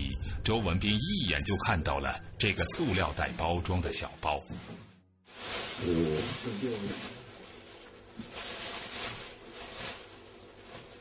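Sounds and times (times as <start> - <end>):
plastic bag crinkling: 5.3 - 11.0.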